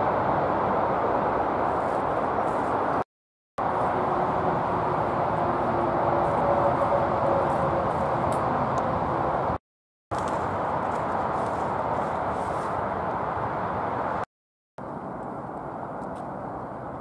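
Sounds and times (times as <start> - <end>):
distant traffic rumble: 0.0 - 3.0, 3.6 - 14.2, 14.8 - 17.0.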